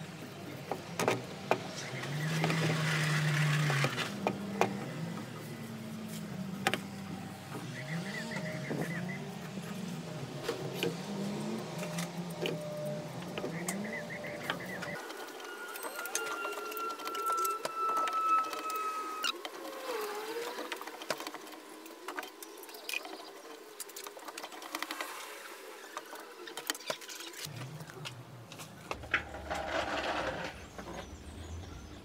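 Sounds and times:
thin steady tone: 0:13.8 - 0:19.4.

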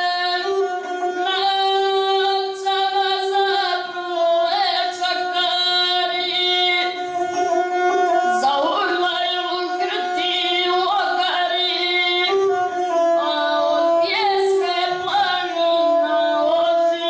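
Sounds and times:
child singing: 0:01.3 - 0:07.0.

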